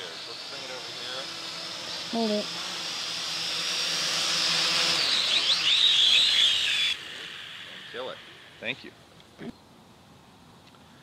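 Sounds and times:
drone motors whining: 0.0s - 9.6s.

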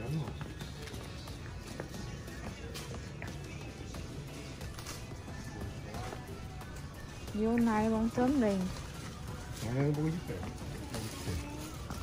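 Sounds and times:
background music: 0.0s - 12.0s
busy shop noise: 0.0s - 12.0s.

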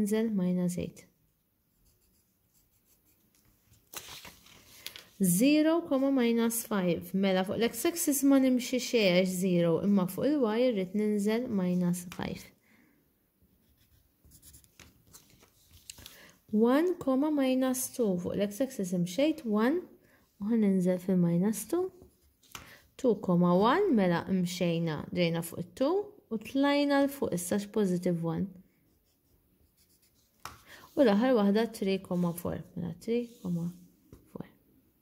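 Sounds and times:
pencil scratching on paper: 1.7s - 3.5s, 13.6s - 14.9s, 28.8s - 32.6s.

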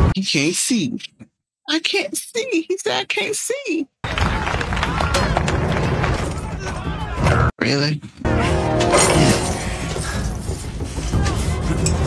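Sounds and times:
crowd clamouring and shouting: 4.0s - 7.5s.

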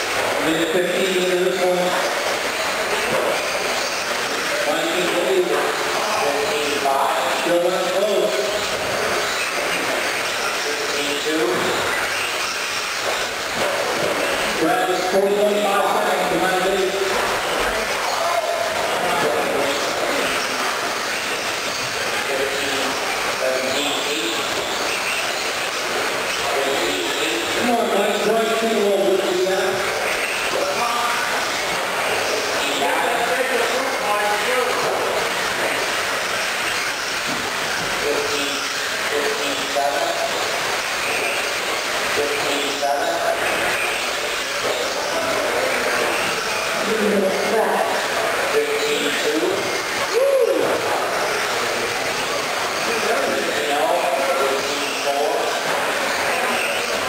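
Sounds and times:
people's voices: 0.0s - 57.0s
radio control trucks racing: 0.0s - 57.0s.

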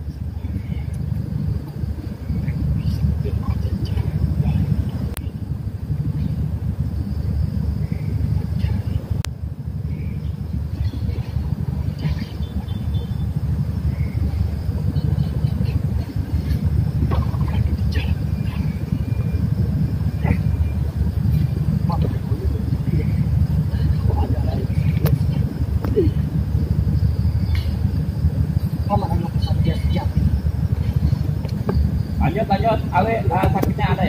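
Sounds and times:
steady low rumble: 0.0s - 34.0s
faint voices: 14.1s - 26.5s.

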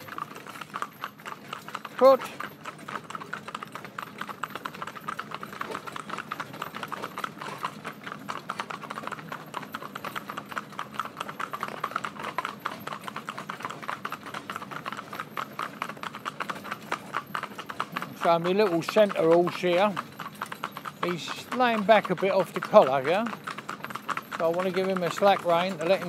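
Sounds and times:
hooves trotting on tarmac: 0.0s - 26.0s.

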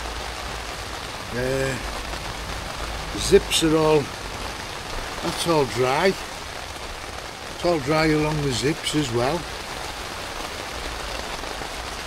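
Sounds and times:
rain drumming on tent fabric: 0.0s - 12.0s.

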